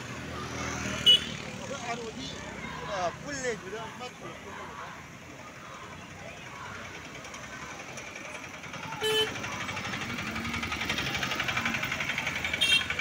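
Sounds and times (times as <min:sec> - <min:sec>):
vehicle engine pulsing: 0:00.0 - 0:13.0
car horn honks: 0:01.0 - 0:01.4, 0:09.0 - 0:09.4, 0:12.6 - 0:13.0.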